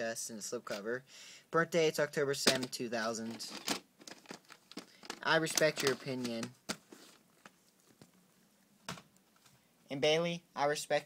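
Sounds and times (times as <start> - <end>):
man's voice: 5.2 - 6.6.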